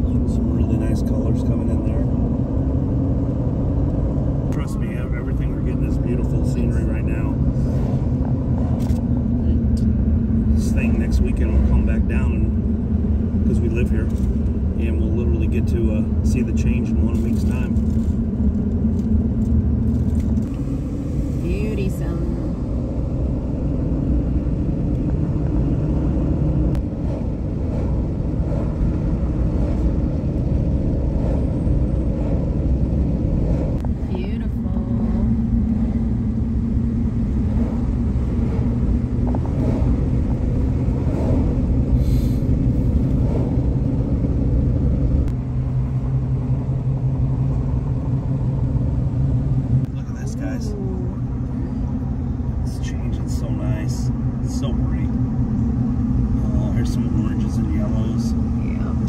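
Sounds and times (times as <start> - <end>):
car road noise from cabin: 0.0 - 59.0.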